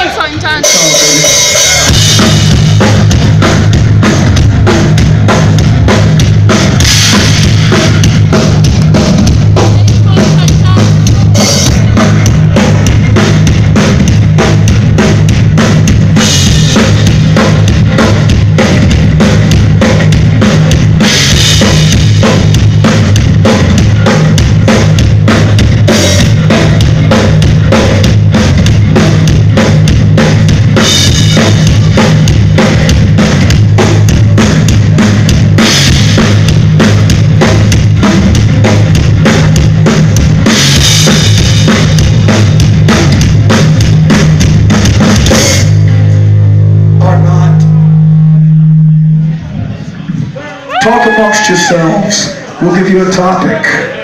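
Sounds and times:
pounding drum beat: 0.0 - 47.1
heavy metal band playing: 0.0 - 54.0.

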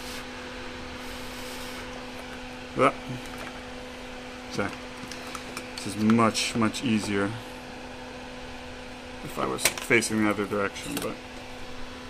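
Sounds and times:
air hissing: 0.0 - 0.3, 1.0 - 1.9
small fan motor humming: 0.0 - 12.0.

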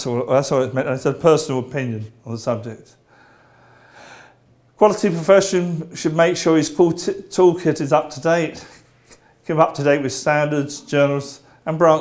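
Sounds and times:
man talking: 0.0 - 3.0, 4.8 - 8.8, 9.4 - 12.0
low steady hum: 0.0 - 12.0
man breathing in: 3.0 - 4.5.

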